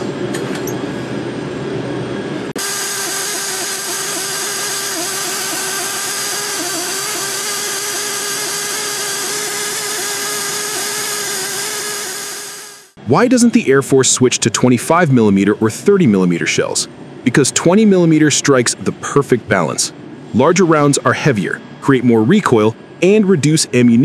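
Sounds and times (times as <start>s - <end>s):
machinery humming: 0.0s - 24.0s.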